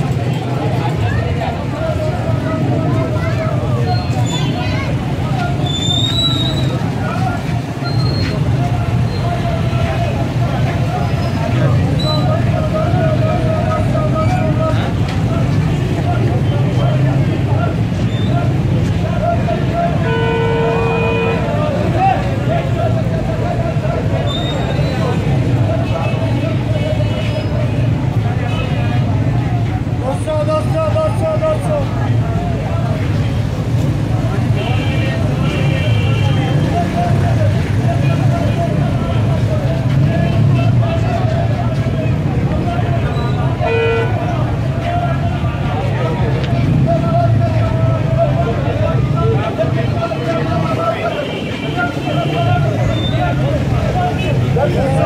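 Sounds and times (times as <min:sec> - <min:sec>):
crowd chatter: 0:00.0 - 0:55.0
vehicle horn toot: 0:20.0 - 0:21.5.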